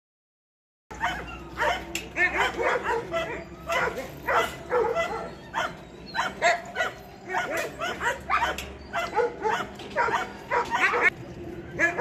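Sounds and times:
dogs barking and yipping: 0.9s - 12.0s.

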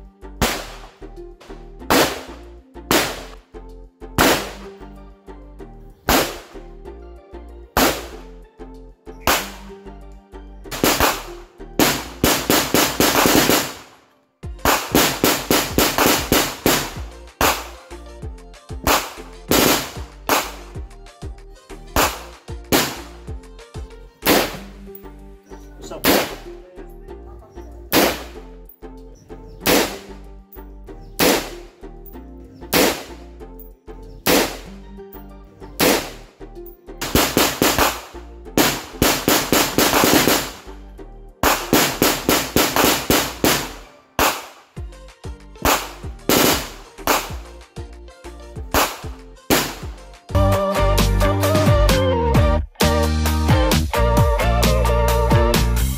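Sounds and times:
background music with steady beat: 0.0s - 55.9s
gunshots: 0.4s - 1.0s, 1.8s - 3.4s, 4.2s - 4.7s, 6.1s - 6.6s, 7.8s - 8.2s, 9.3s - 9.8s, 10.7s - 14.0s, 14.6s - 17.8s, 18.8s - 20.7s, 22.0s - 23.2s, 24.2s - 24.7s, 26.0s - 26.5s, 27.9s - 28.4s, 29.6s - 30.1s, 31.2s - 31.6s, 32.7s - 33.2s, 34.2s - 34.7s, 35.8s - 36.2s, 37.0s - 40.7s, 41.4s - 44.7s, 45.6s - 47.5s, 48.7s - 50.0s.

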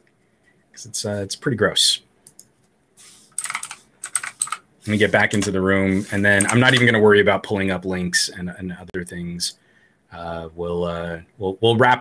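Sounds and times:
computer keyboard key clicks: 3.4s - 4.6s.

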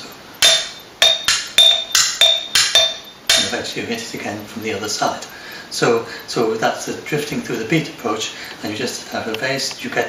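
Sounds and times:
sticks tapping glass jars: 0.0s - 3.7s.

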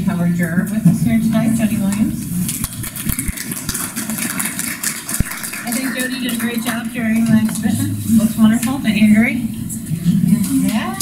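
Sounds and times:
small audience applauding: 2.5s - 7.5s.

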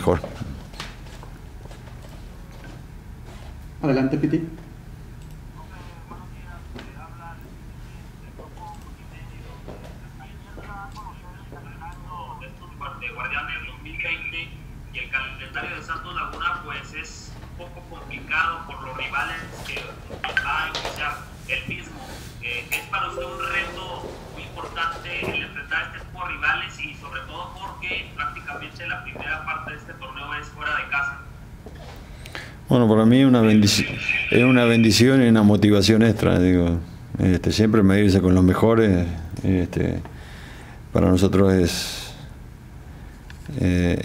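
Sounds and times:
steady low hum: 0.0s - 44.0s
tinny voice over video call: 10.3s - 31.2s, 33.4s - 35.0s.

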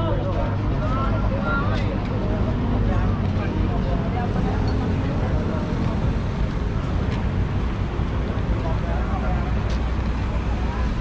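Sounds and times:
indistinct voices talking: 0.0s - 11.0s
low rumble of traffic: 0.0s - 11.0s.

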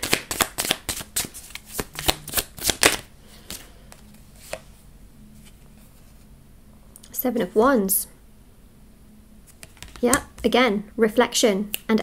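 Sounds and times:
cards being shuffled: 0.0s - 4.7s, 9.5s - 10.5s.

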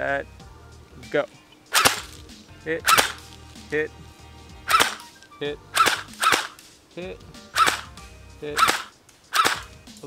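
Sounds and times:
airsoft gun firing single shots: 1.7s - 2.2s, 2.9s - 3.2s, 4.7s - 5.1s, 5.8s - 6.6s, 7.6s - 8.0s, 8.6s - 9.8s.

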